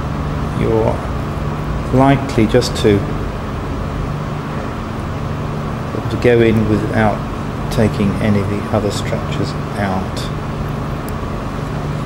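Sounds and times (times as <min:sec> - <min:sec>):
machinery humming: 0:00.0 - 0:12.0.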